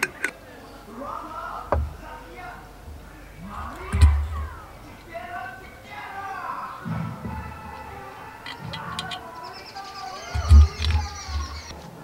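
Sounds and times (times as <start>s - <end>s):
birds chirping: 0.0s - 12.0s
low thumps: 1.7s - 2.1s, 2.8s - 5.1s, 10.4s - 11.7s
metallic clicks of camping stove: 8.4s - 9.2s.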